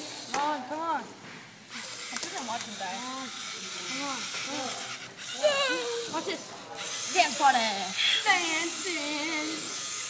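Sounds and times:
children shouting and squealing: 5.3 - 6.4.

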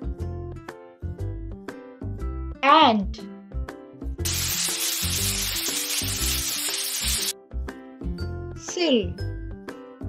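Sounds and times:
children's background music: 0.0 - 10.0
loud steady hiss: 4.3 - 7.3.

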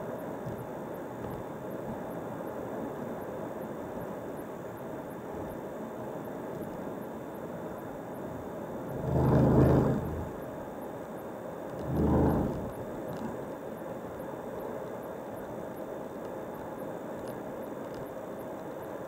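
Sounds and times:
car road and engine noise: 8.3 - 10.6, 11.7 - 13.3
rushing swells: 8.8 - 10.4, 11.8 - 12.8.

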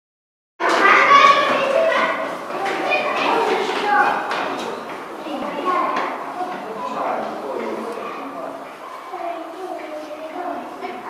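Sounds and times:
children talking and calling out: 0.6 - 11.0.

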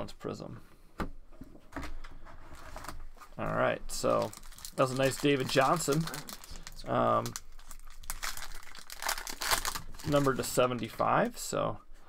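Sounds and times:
card pack handling noise: 4.0 - 10.9.

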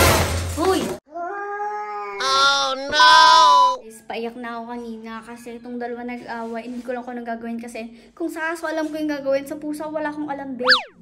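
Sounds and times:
cat yowling: 1.1 - 3.8.

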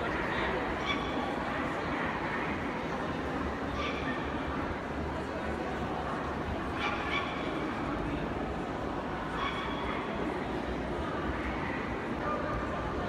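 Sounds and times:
crowd murmur in a large hall: 0.0 - 13.0.

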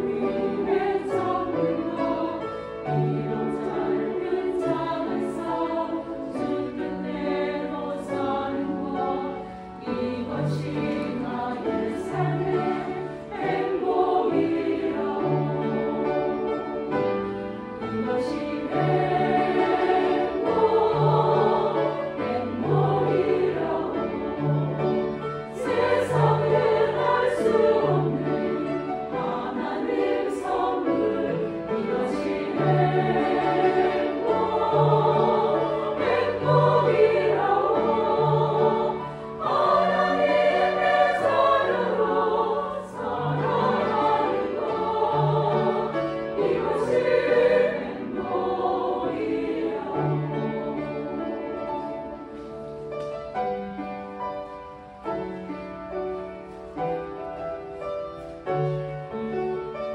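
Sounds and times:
women's choir singing: 0.0 - 52.9
grand piano: 0.0 - 59.9.

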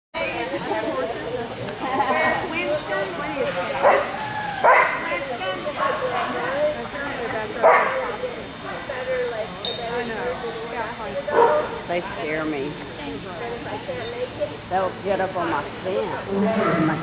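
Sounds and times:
people talking: 0.2 - 17.0
dogs barking: 3.8 - 6.7, 7.6 - 8.3, 11.3 - 11.9.

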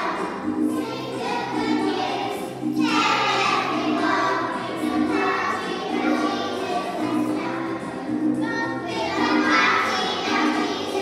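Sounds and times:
children singing together: 0.0 - 11.0.

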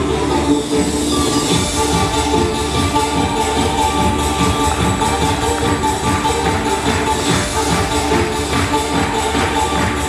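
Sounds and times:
show music: 0.0 - 10.0.

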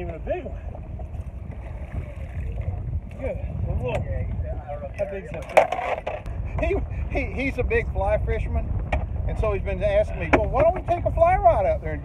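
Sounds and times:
water moving around boat: 0.0 - 7.6
wind rumble on microphone: 0.0 - 12.0.

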